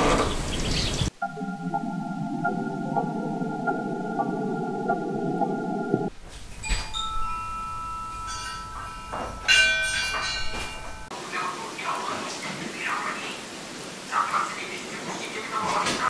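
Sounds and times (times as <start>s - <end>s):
held tones: 1.1s - 6.1s
low noise: 1.1s - 11.9s
bell-like chimes ringing: 1.2s - 11.1s.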